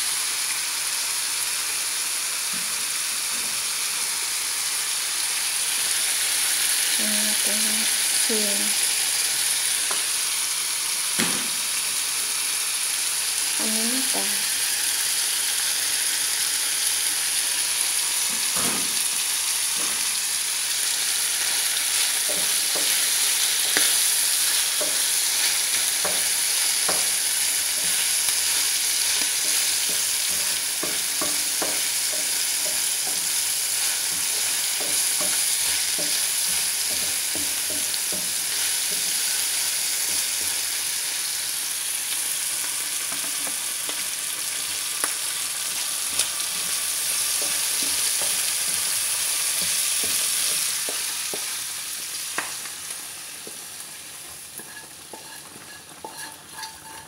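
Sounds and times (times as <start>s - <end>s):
food sizzling in hot oil: 0.0s - 57.0s
wooden spatula taps and scrapes: 54.6s - 57.0s.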